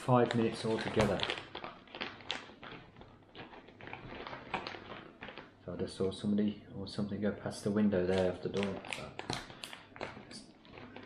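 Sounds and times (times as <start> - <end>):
foil pouch crinkling: 0.0 - 11.0.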